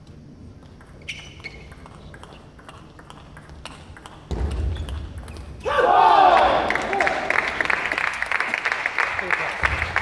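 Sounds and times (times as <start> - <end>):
table tennis ball clicking: 0.6 - 5.5.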